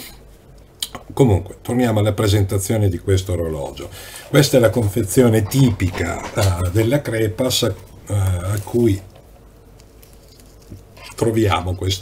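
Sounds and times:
plastic wrapping rustling: 3.3s - 12.0s.

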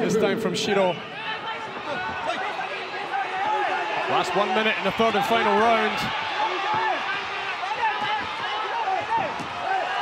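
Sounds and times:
crowd shouting: 0.8s - 10.0s.

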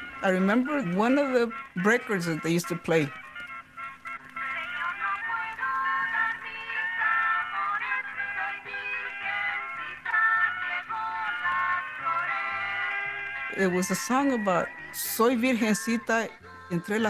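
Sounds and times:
old record playing music: 0.0s - 17.0s.

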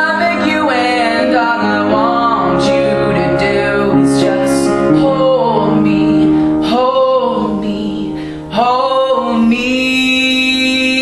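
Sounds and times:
man singing: 0.0s - 11.0s
upright piano chords: 0.0s - 11.0s.

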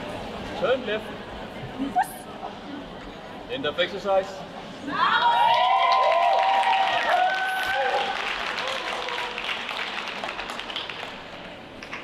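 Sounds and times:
audience applause: 5.4s - 12.0s.

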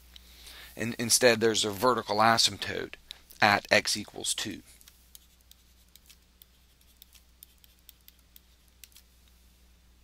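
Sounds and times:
stylus tapping on pen tablet: 5.1s - 9.0s.

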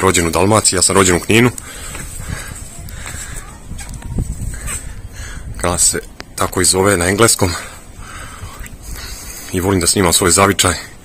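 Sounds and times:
faint footsteps on paving: 0.2s - 5.1s
wind rumble on microphone: 1.6s - 6.7s, 7.8s - 9.4s.

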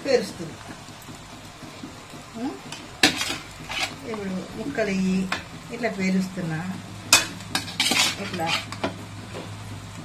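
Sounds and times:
metal spoon scraping metal pot: 3.0s - 4.1s, 7.1s - 8.9s.

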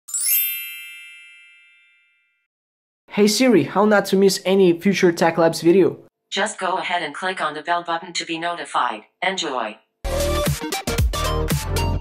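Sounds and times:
bright chime ringing: 0.1s - 2.5s.

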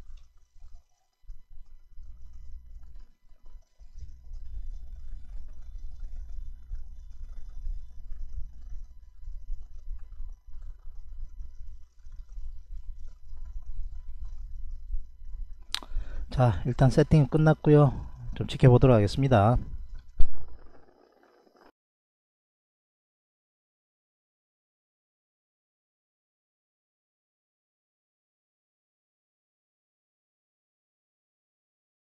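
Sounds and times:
faint high electrical tones: 0.0s - 21.7s
low microphone rumble: 3.8s - 20.7s.

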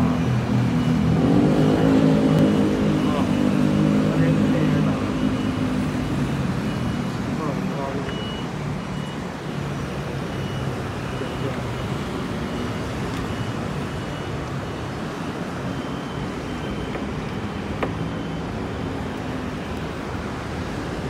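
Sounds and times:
city traffic noise: 0.0s - 21.0s
faint high beep: 2.8s - 5.7s, 6.7s - 18.6s.

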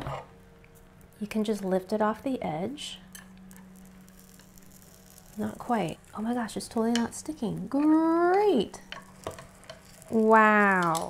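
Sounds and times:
faint steady hum: 0.0s - 11.0s
batter sizzling on hot pan: 2.8s - 11.0s.

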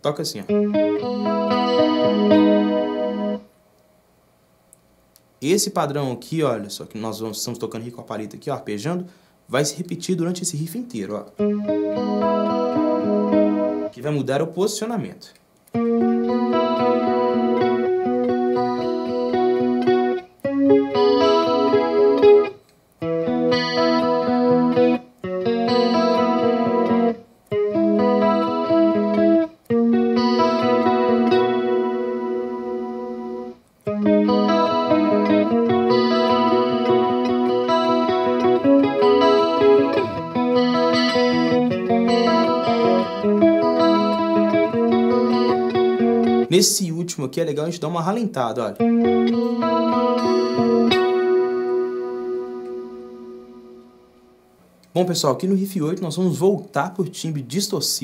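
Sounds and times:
clean electric guitar arpeggios: 0.2s - 3.5s, 11.3s - 14.0s, 15.7s - 46.8s, 47.6s - 54.4s.

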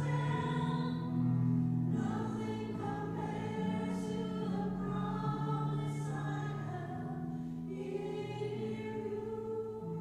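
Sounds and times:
voices singing a worship song: 0.0s - 1.2s, 1.9s - 10.0s.

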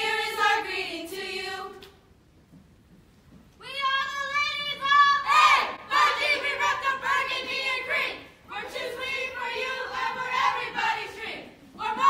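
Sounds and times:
loud shout: 3.6s - 6.8s.

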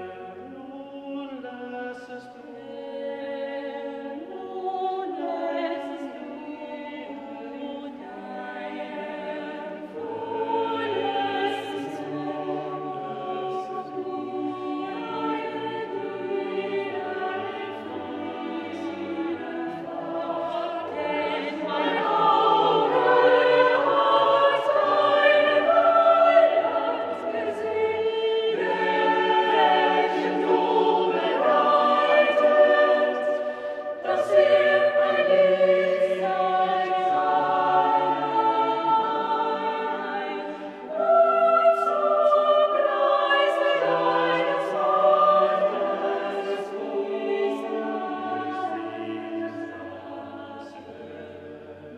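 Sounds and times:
choir singing choral music: 0.0s - 51.9s.

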